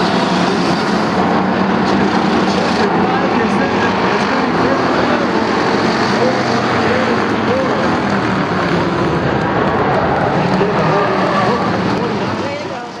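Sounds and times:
race car engines: 0.0 - 13.0.

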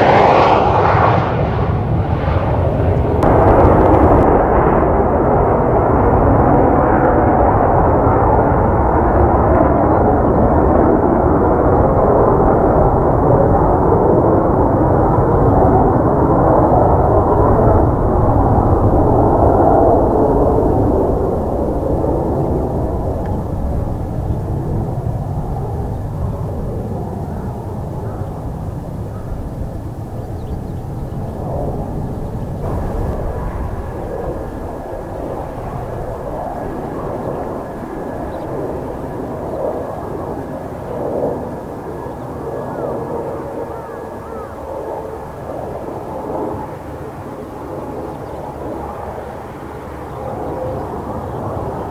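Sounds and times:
jet flying past overhead: 0.0 - 51.9.

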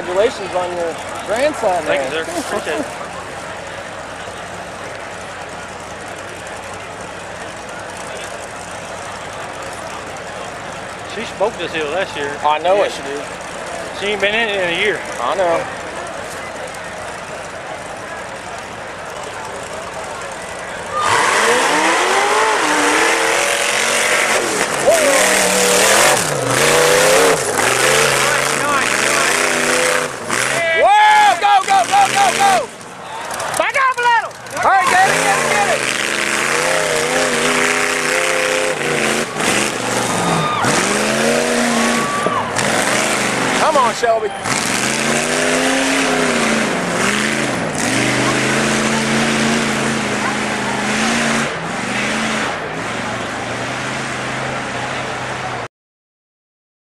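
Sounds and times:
buggy engine revving: 0.0 - 55.7.

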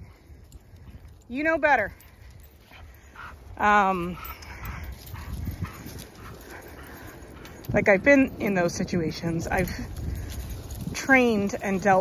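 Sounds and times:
dogs scuffing and rustling: 2.0 - 12.0
steady low rumble: 2.0 - 12.0.

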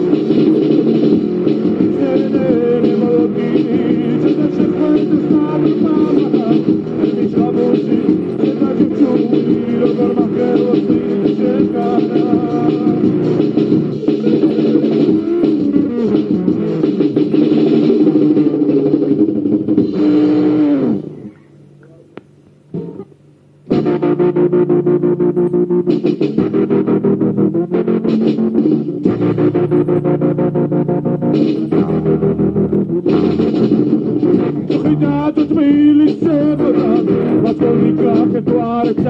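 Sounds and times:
rock band playing: 0.0 - 21.2, 23.7 - 39.0
electric guitar: 0.0 - 21.5
bass guitar: 0.0 - 22.0, 22.7 - 39.0
keyboard: 0.0 - 39.0.

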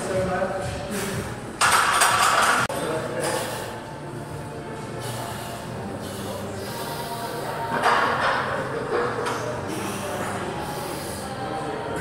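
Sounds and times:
voices in echoing room: 0.0 - 1.5.

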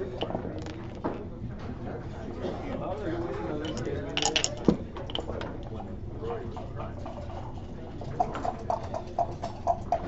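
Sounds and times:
dice rattling in a cup: 0.0 - 1.2, 3.6 - 5.5.

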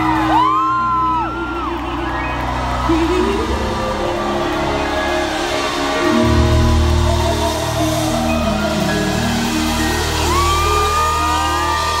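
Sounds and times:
audience whooping: 0.0 - 12.0
live band music: 0.0 - 12.0.

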